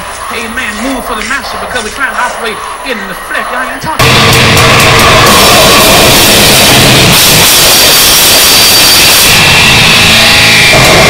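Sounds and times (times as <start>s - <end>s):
harsh distorted noise music: 0.0s - 11.0s
thin high whine: 0.0s - 11.0s.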